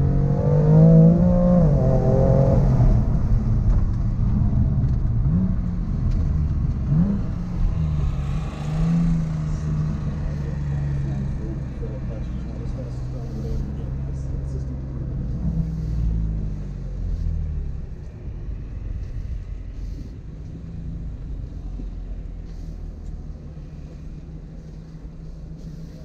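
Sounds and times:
car engine from inside cabin: 0:00.0 - 0:26.0.

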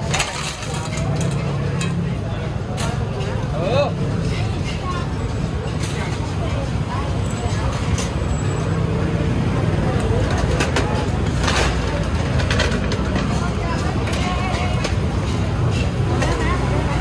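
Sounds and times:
people talking nearby: 0:00.0 - 0:17.0
street traffic rumble: 0:00.0 - 0:17.0.

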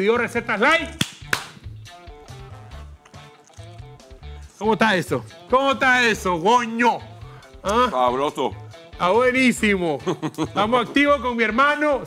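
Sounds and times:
music with repeating bass line: 0:00.2 - 0:12.0
hand claps: 0:00.9 - 0:01.9.

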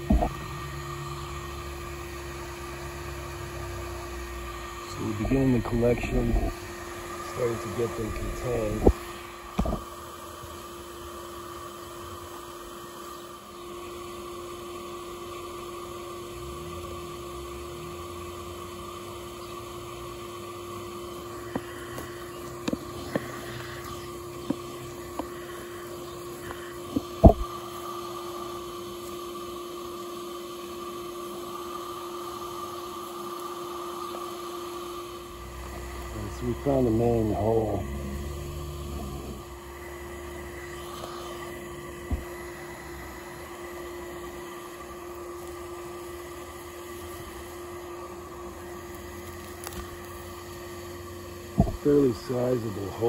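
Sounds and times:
bee vacuum humming and whining: 0:00.0 - 0:53.0.

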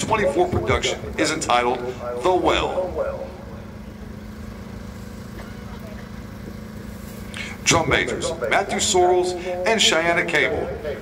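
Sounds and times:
steady low hum with rumble: 0:00.0 - 0:11.0.

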